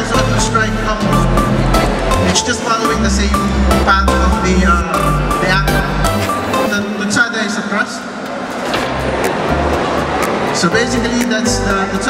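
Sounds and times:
person speaking: 0.0s - 8.0s.

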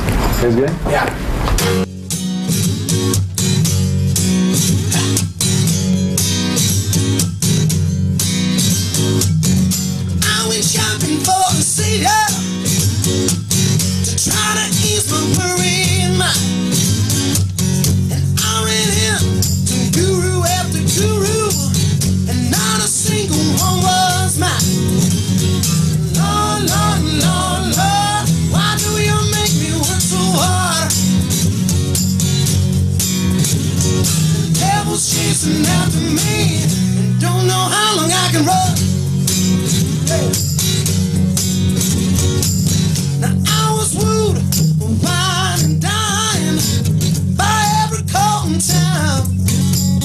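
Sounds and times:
bass notes: 0.0s - 50.0s
strummed acoustic guitar: 0.0s - 50.0s
man singing: 10.2s - 12.5s, 14.2s - 16.6s, 18.1s - 24.8s, 26.1s - 31.0s, 34.6s - 38.8s, 40.1s - 40.4s, 43.2s - 46.8s, 47.4s - 49.3s.

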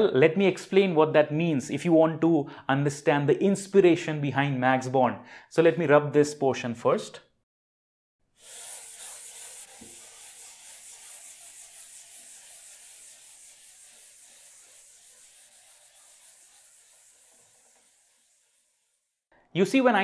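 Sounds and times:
eraser rubbing on board: 8.4s - 19.2s.

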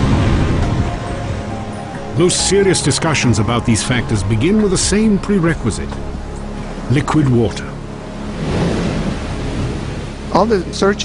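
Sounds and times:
ocean wave breaking: 0.0s - 11.0s.

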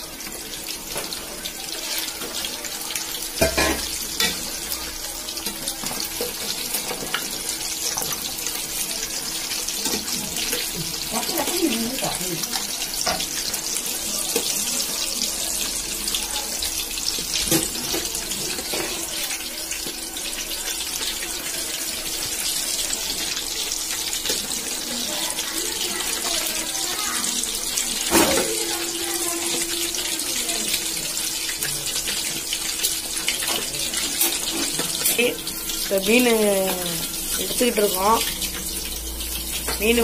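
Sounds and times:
fish sizzling in hot oil: 0.0s - 40.0s.

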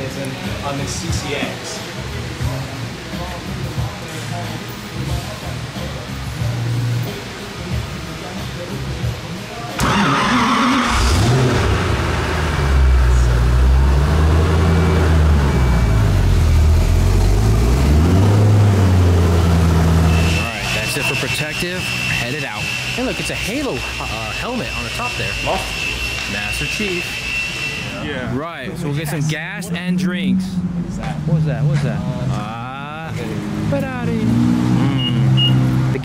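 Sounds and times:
car engine starting and idling: 9.8s - 27.8s.

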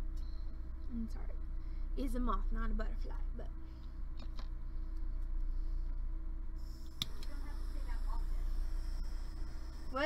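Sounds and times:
low electrical hum: 0.0s - 10.0s
thin high whine: 5.4s - 10.0s
sharp click: 6.9s - 7.4s.

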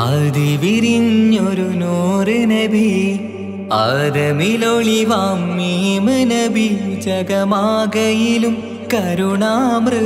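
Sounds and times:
person singing devotional song: 0.0s - 10.0s.

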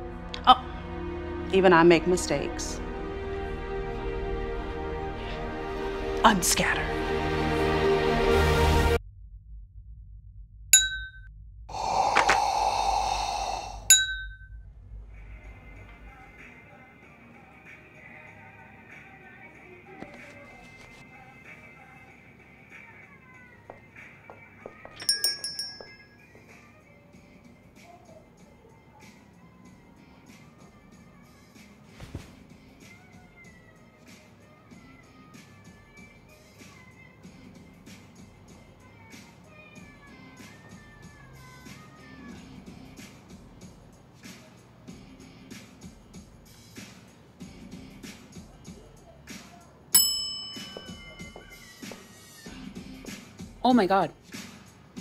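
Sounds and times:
high bell-like chimes: 25.0s - 26.2s, 50.0s - 51.7s.

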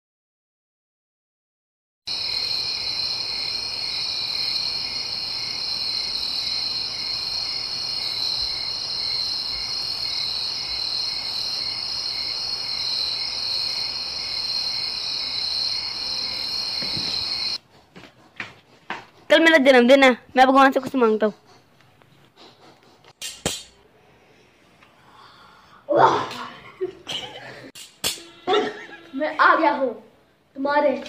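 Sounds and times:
crickets chirping: 2.1s - 17.6s.

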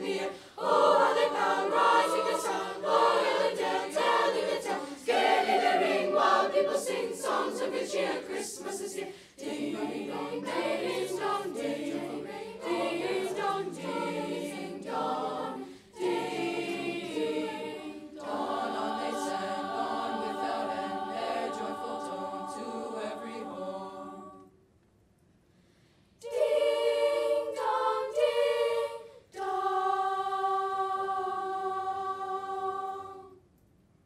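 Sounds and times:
children's choir singing: 0.0s - 24.5s, 26.2s - 33.4s.

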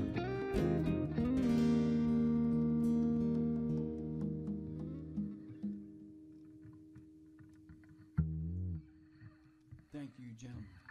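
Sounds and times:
guitar note ringing: 0.0s - 10.9s.

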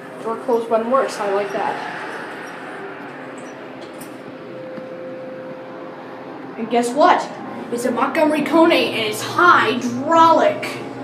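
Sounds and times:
faint steady tone: 0.0s - 8.0s
elevator pump hum: 0.0s - 11.0s.

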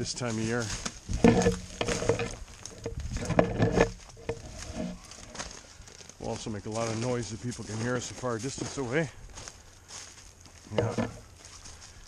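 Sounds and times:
footsteps crunching through snow: 0.0s - 3.2s, 3.9s - 12.0s.

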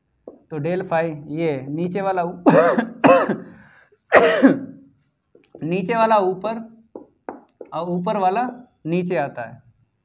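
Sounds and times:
man coughing: 2.4s - 4.8s.

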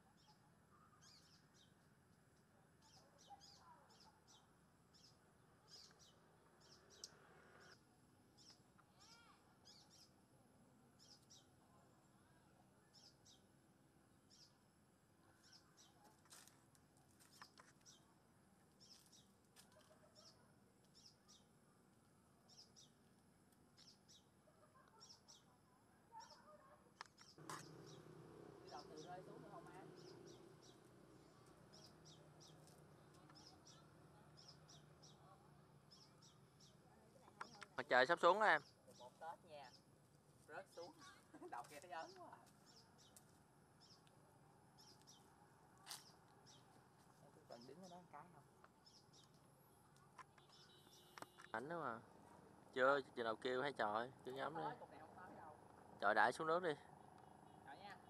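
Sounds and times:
faint bird chirps: 0.0s - 1.9s, 2.8s - 10.2s, 10.9s - 13.5s, 14.2s - 14.6s, 15.2s - 16.1s, 17.2s - 21.8s, 22.4s - 23.1s, 23.8s - 39.9s, 47.5s - 52.0s.

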